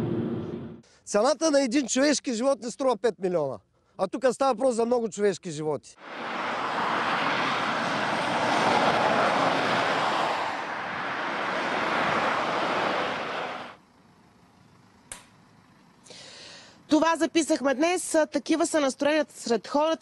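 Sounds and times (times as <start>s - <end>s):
road traffic passing close: 6.0s - 17.0s
brief click: 15.1s - 15.3s.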